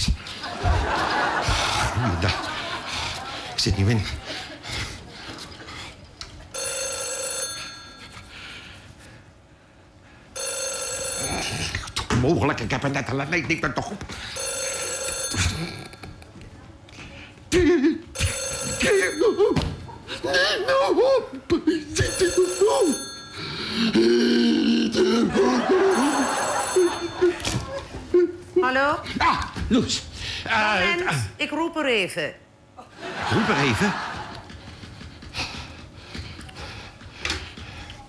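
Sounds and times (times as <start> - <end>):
telephone ringing: 6.5 - 8.3, 10.4 - 11.7, 14.3 - 16.2, 18.2 - 19.7, 21.9 - 23.8, 25.6 - 27.8
man making drawn-out vocal noises: 23.8 - 25.7.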